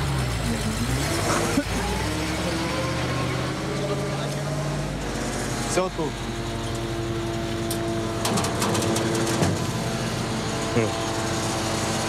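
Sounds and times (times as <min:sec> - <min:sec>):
truck engine idling: 0:00.0 - 0:12.0.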